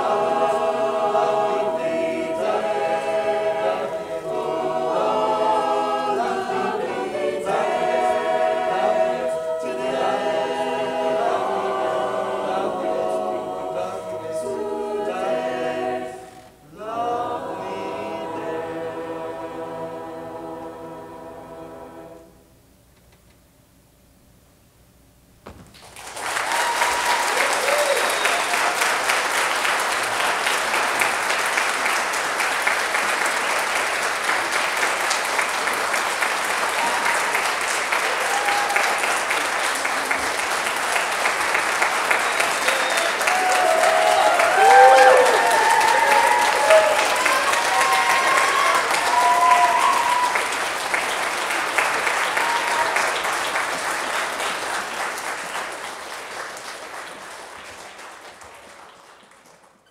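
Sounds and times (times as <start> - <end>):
audience applause: 25.5 - 59.9
voices cheering: 26.0 - 29.0, 36.8 - 39.3, 42.1 - 50.6, 52.0 - 53.3.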